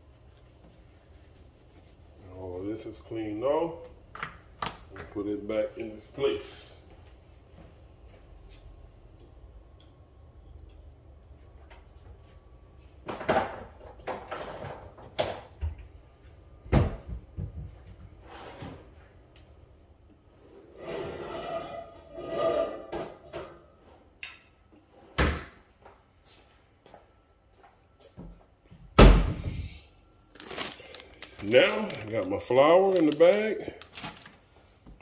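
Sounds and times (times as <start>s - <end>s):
rustling: 30.3s - 34.7s.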